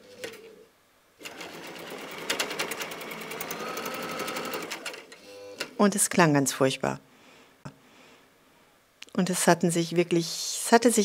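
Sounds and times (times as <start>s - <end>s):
sewing machine stitching fast: 1.2s - 5.7s.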